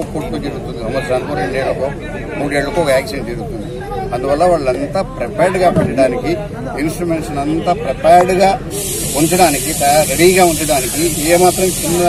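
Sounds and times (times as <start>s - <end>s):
steady high hiss: 8.4s - 12.0s.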